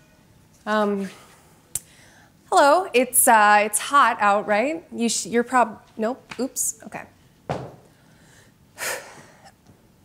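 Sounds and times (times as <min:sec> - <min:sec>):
person breathing: 0:01.2 - 0:02.4, 0:07.9 - 0:09.6.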